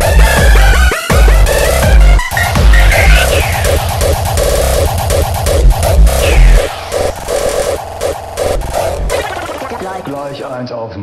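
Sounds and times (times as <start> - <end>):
heavy kick drums: 0.0 - 10.1
stuttering synth stabs: 0.0 - 10.6.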